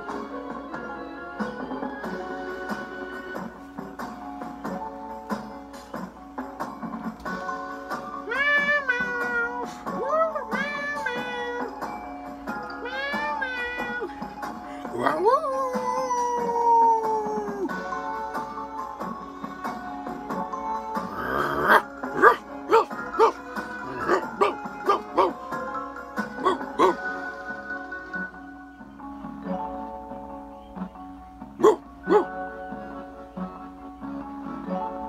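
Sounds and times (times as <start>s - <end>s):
background music: 0.0s - 35.0s
person voicing cat meow: 8.3s - 11.8s, 12.8s - 17.8s, 21.1s - 25.2s
dog barking: 21.2s - 25.5s, 26.4s - 27.1s, 31.6s - 32.4s.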